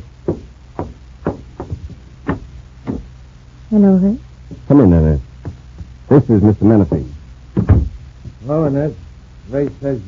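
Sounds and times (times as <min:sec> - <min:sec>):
knocks and thumps on door: 0:00.2 - 0:03.1, 0:07.6 - 0:08.4
footsteps: 0:00.3 - 0:03.1.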